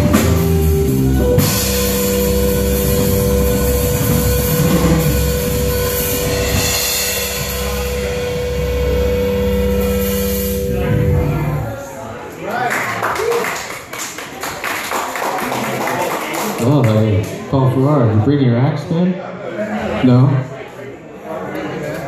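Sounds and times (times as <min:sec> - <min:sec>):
bass and drums sustained chord: 0:00.0 - 0:11.8
cymbal wash: 0:00.4 - 0:11.7.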